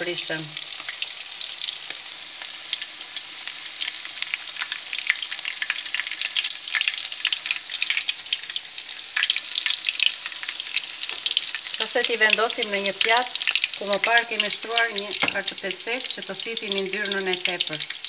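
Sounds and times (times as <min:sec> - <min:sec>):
patties sizzling in oil: 0:00.0 - 0:18.0.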